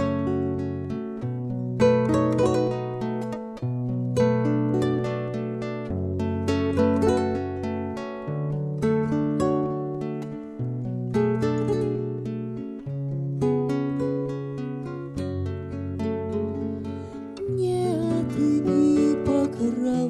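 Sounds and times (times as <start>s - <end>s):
acoustic guitar picking chords: 0.0s - 20.0s.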